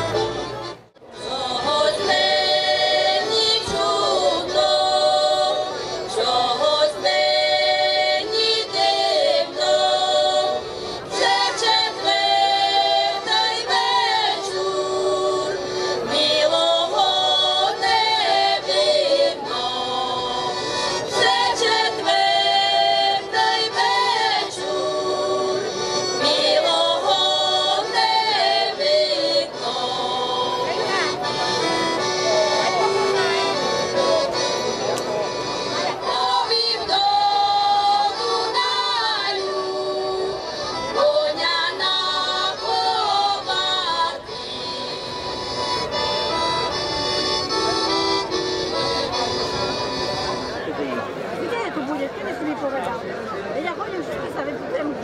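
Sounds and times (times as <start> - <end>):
piano accordion: 0.0 - 51.7
women singing a folk song: 1.1 - 31.5, 35.7 - 46.4.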